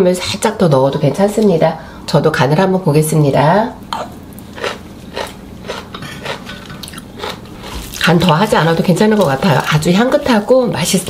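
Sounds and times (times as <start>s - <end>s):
person chewing: 3.9s - 9.7s.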